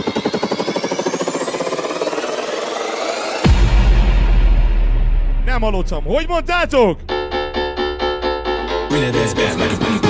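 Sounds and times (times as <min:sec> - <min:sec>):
rising synth sweeps: 0:00.8 - 0:10.0.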